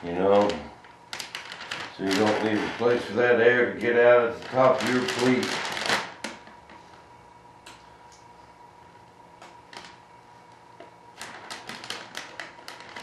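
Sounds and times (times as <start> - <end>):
faint steady hum: 0.0 - 13.0
plastic film crinkling: 0.2 - 6.6, 11.2 - 13.0.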